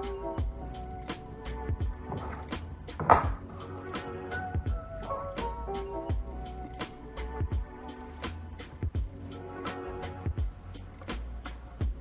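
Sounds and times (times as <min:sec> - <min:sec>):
lo-fi music with steady beat: 0:00.0 - 0:12.0
handling noise bump: 0:02.0 - 0:03.5.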